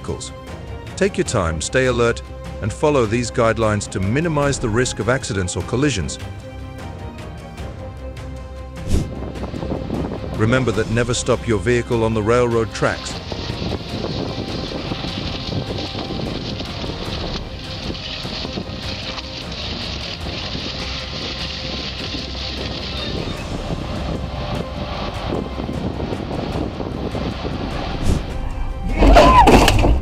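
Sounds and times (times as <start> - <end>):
background music: 0.0 - 30.0
diesel locomotive engine drone: 1.9 - 30.0.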